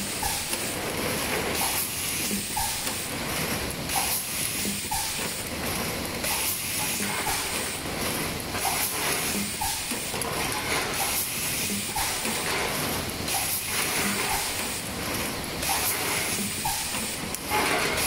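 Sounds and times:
air blasts and clicks: 0.0s - 18.0s
machine mechanisms clattering: 0.0s - 18.0s.

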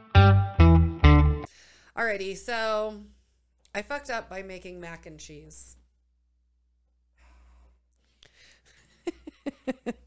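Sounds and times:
breath into a microphone: 1.5s - 2.0s, 7.2s - 8.9s.

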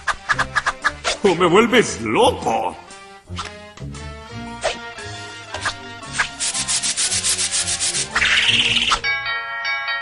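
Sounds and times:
fast rhythmic scratching: 5.6s - 8.9s.

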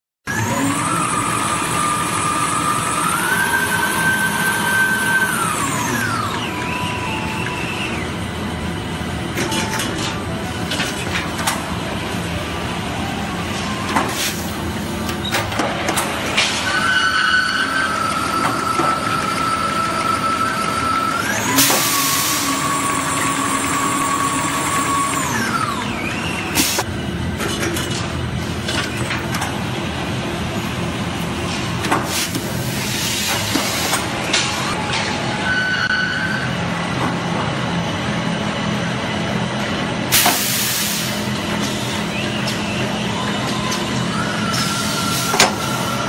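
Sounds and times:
motor whine: 0.3s - 9.4s, 16.8s - 26.6s
compressed air hiss: 40.1s - 41.3s.

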